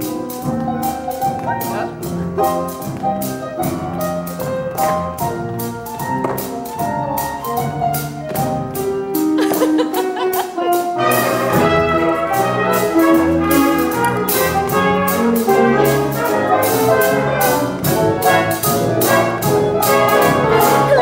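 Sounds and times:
brass band playing upbeat tune: 0:00.0 - 0:21.0.

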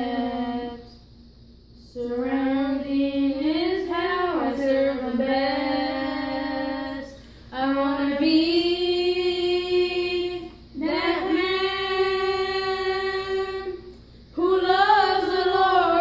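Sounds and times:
boys singing slow song: 0:00.0 - 0:01.2, 0:01.8 - 0:16.0.

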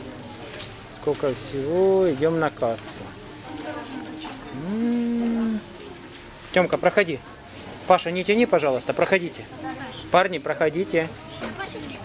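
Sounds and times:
person humming: 0:04.5 - 0:05.7.

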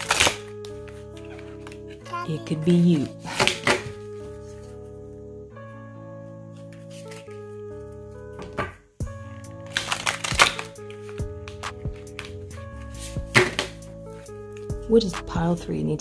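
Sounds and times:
cards being shuffled: 0:00.0 - 0:02.0, 0:09.6 - 0:13.8
background music with held tones: 0:00.0 - 0:16.0.

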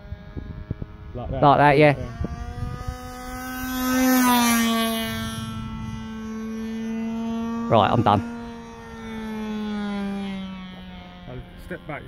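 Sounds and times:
model airplane engine buzzing: 0:00.0 - 0:12.0.

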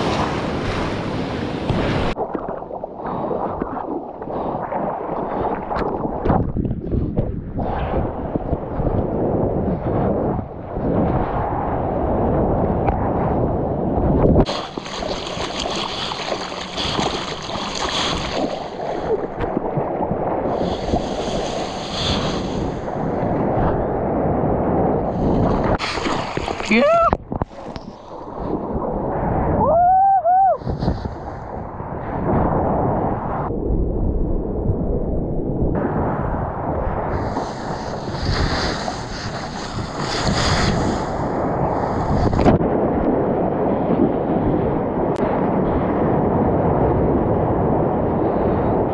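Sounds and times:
water sloshing against surfboard: 0:14.4 - 0:22.9, 0:25.3 - 0:28.9
hiss of rushing water: 0:20.5 - 0:22.9.

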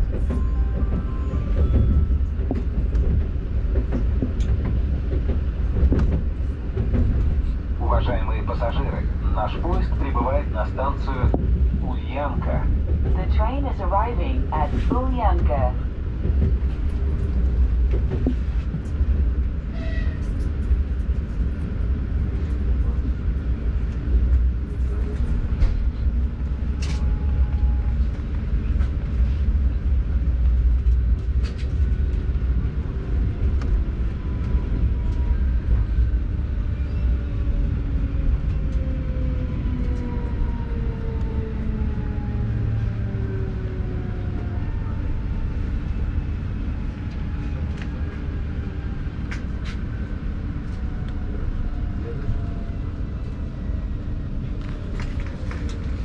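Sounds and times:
train running rumble: 0:00.0 - 0:56.0.

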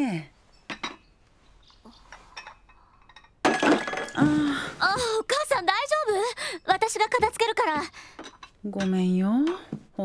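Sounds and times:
teacup clattering crash: 0:03.4 - 0:04.5.

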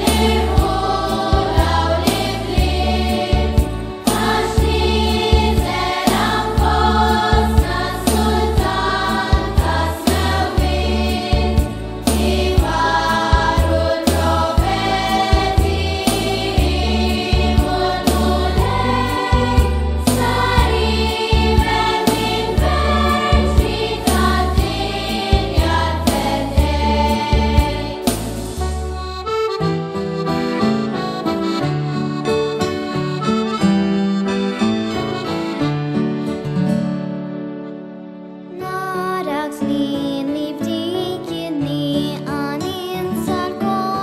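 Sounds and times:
choir singing a carol: 0:00.0 - 0:28.8
instrumental backing with beat: 0:00.0 - 0:35.6.

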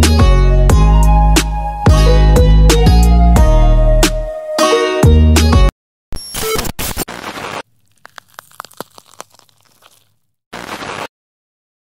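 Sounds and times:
crackling glitch clicks: 0:06.2 - 0:08.4
burst of loud static: 0:06.8 - 0:07.7.

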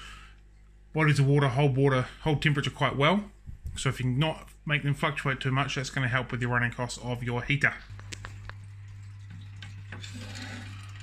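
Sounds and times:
aquarium equipment hum: 0:00.0 - 0:11.0
soft trickling water: 0:07.9 - 0:11.0.

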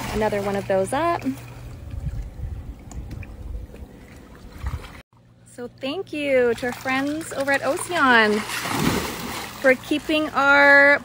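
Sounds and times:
pool water splashing: 0:00.0 - 0:05.0, 0:06.2 - 0:11.0
low rumble: 0:01.4 - 0:05.0.

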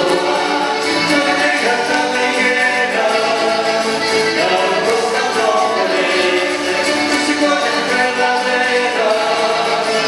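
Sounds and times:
folk music with voices singing: 0:00.0 - 0:10.0.

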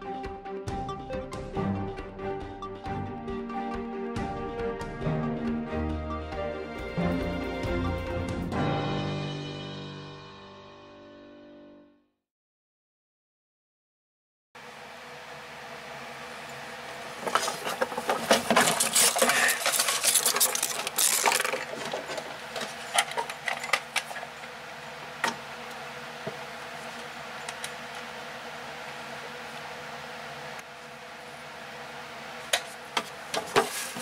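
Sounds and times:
steady low hum: 0:14.6 - 0:34.0
plastic cassette clattering on wood: 0:17.3 - 0:24.2.

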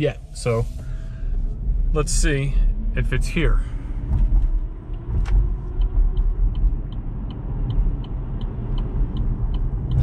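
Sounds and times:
road and tyre rumble in car: 0:00.0 - 0:10.0
turn signal ticking: 0:04.0 - 0:10.0.

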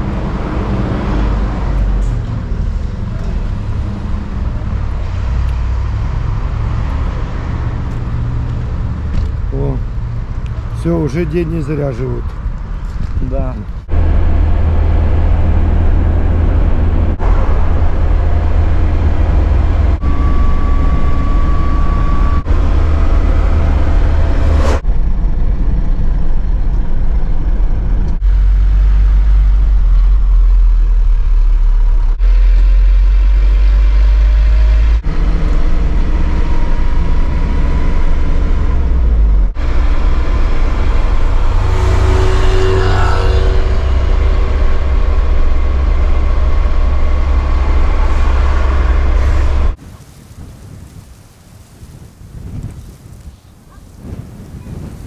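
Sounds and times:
engine and tyres rumbling: 0:00.0 - 0:55.0
wind rushing: 0:12.4 - 0:28.2, 0:35.2 - 0:55.0.

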